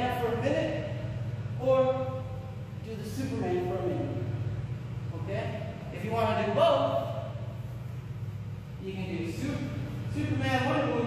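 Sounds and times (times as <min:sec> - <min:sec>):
steady low hum: 0:00.0 - 0:11.0
man speaking: 0:01.6 - 0:04.4, 0:05.1 - 0:07.4, 0:08.8 - 0:11.0.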